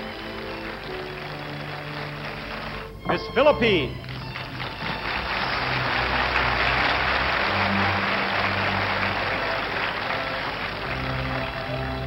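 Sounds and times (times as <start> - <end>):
audience applauding and cheering: 0.0 - 12.0
orchestra playing sustained chords: 0.0 - 12.0.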